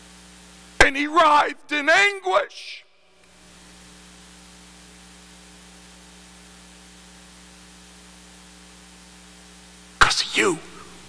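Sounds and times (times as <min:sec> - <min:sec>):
electrical mains hum: 0:00.0 - 0:11.0.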